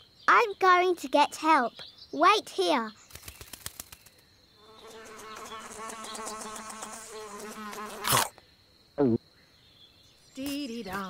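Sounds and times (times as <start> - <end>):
cartoon fly buzzing: 4.6 - 8.3.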